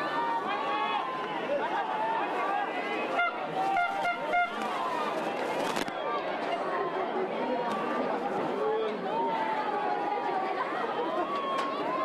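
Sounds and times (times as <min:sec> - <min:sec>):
crowd chatter: 0:00.0 - 0:12.0
horn honking toots: 0:03.1 - 0:04.6.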